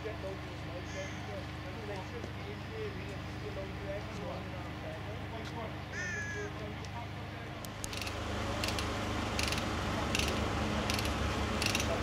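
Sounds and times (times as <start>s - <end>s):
bird call: 5.9s - 6.5s
steady low hum: 7.2s - 12.0s.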